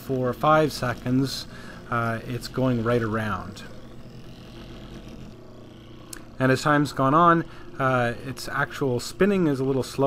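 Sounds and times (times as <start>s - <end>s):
gyroscope rotor whirring: 0.0s - 10.0s.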